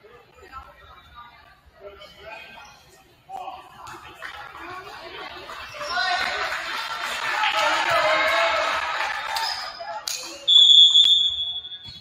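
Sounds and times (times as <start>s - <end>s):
crowd chatter: 0.0s - 10.6s
referee's whistle blowing: 10.4s - 12.0s.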